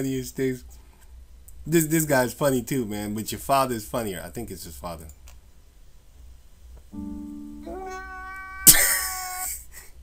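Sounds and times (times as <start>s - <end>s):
man crying and sobbing: 8.6s - 10.0s.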